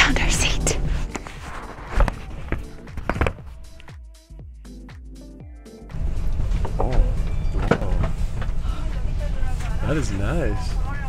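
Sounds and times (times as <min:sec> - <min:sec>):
low rumble of train interior: 0:05.9 - 0:11.0.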